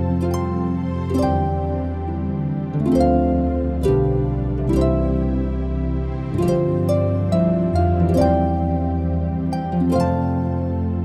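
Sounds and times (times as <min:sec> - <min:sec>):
plucked harp notes: 0:00.0 - 0:11.0
sustained low drone: 0:00.0 - 0:11.0.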